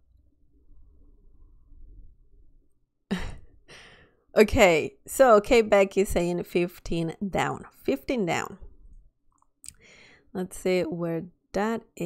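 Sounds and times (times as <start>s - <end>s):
faint breath: 3.6s - 4.3s, 9.8s - 10.3s.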